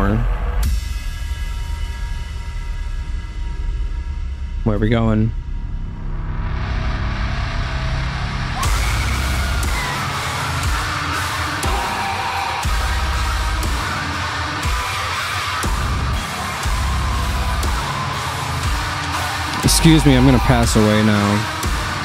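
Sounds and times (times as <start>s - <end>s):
distorted guitar: 7.1s - 22.0s
heavy metal band playing: 8.5s - 22.0s
drum hits: 12.6s - 22.0s.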